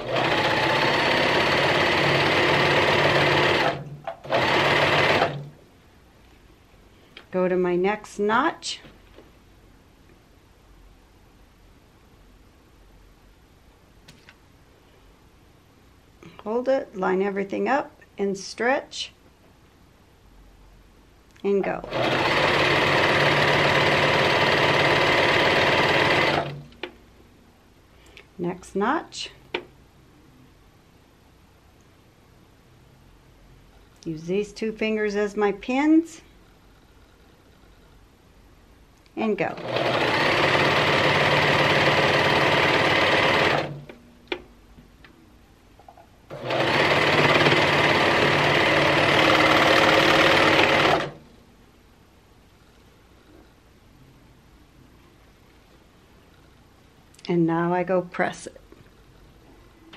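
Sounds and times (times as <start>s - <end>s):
overlock machine stitching: 0.0s - 5.5s, 21.8s - 26.6s, 39.5s - 43.9s, 46.3s - 51.2s.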